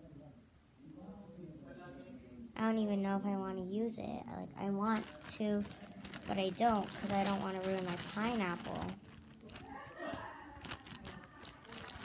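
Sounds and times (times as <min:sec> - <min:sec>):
plastic bag crinkling: 0:04.8 - 0:12.0.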